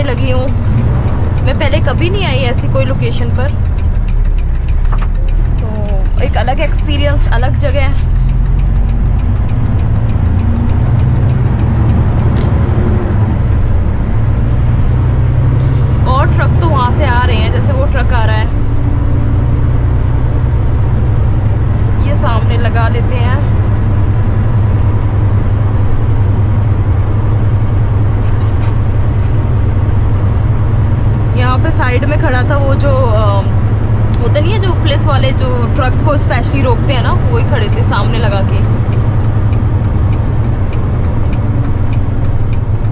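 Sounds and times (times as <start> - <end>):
voice: 0.0 - 0.7, 1.4 - 3.6, 5.5 - 8.3, 15.6 - 18.6, 22.0 - 23.6, 31.3 - 33.6, 34.2 - 38.8
deep low hum: 0.0 - 42.9
truck engine and road noise: 0.0 - 42.9.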